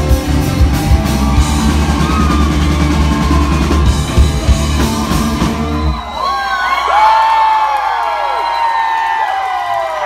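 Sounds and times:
rock band closing chord: 0.0s - 6.0s
audience whooping and cheering: 0.0s - 10.0s.

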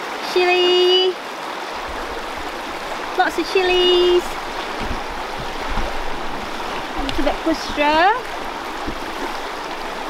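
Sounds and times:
river water rushing over rocks: 0.0s - 10.0s.

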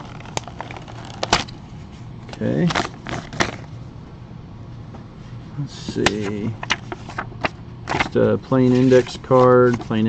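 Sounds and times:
sharp paper crackle: 0.0s - 1.6s, 2.3s - 3.7s, 6.0s - 10.0s
faint paper handling: 0.0s - 3.8s, 5.2s - 10.0s
paper envelope rustling: 0.0s - 3.8s, 5.8s - 10.0s.

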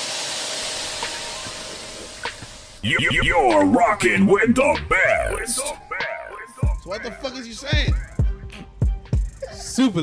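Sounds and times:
steady hiss: 0.0s - 2.8s.

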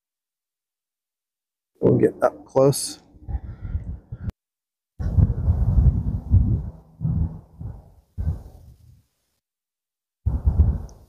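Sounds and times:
wind buffeting microphone: 3.0s - 4.4s, 5.0s - 9.0s, 10.2s - 11.0s.

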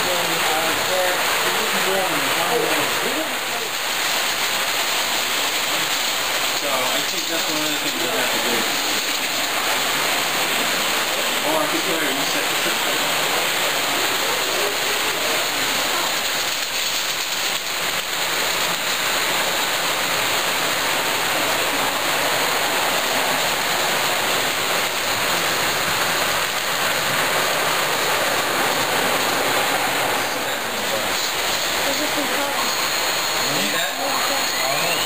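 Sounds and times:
model trains running on track: 0.0s - 35.0s.

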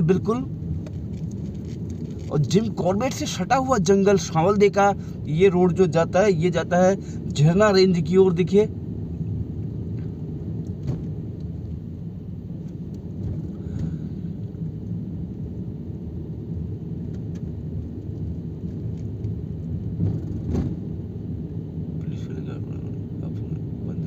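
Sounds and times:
car engine and tyres rumbling: 0.0s - 24.0s.

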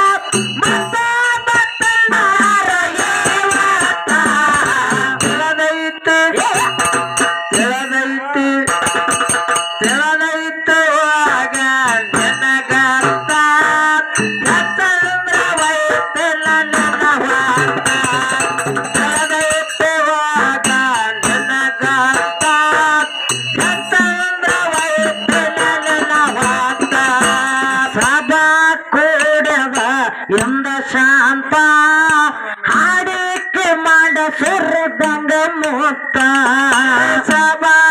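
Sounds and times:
hand percussion strokes: 0.0s - 28.6s
harmonium: 0.0s - 37.9s
woman singing through microphone: 0.9s - 6.8s.

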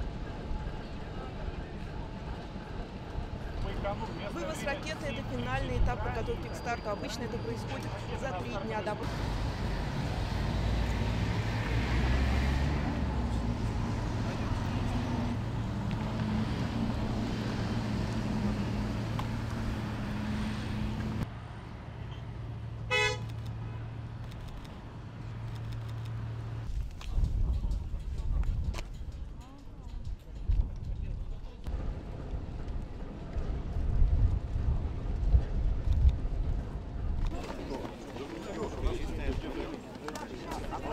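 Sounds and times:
diesel locomotive engine hum: 0.0s - 40.9s
short horn toot: 22.9s - 23.3s.

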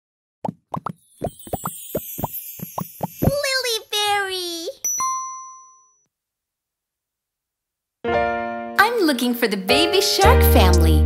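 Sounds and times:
cartoon bloops dropping in pitch: 0.4s - 3.4s.

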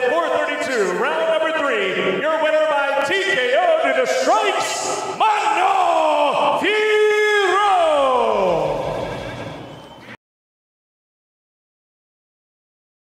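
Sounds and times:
announcer bellowing: 0.0s - 9.1s.

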